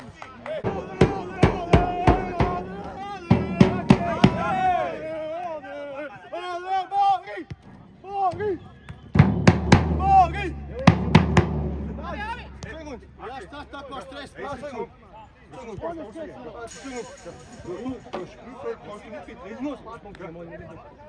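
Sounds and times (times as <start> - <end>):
bass drum beaten: 0.6 - 4.9, 9.2 - 14.1
men chanting: 0.6 - 5.3.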